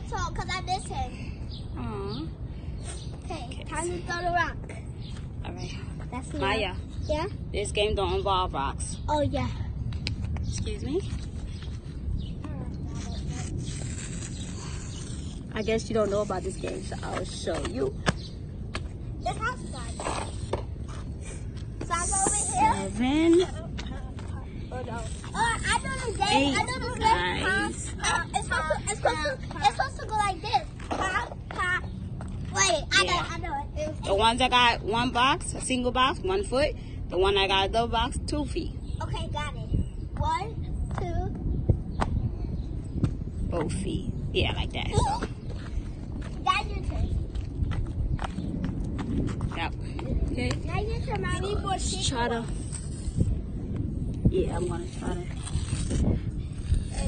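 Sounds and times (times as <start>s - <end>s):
low background rumble: 0.0s - 57.0s
feet hopping on asphalt: 45.2s - 50.6s.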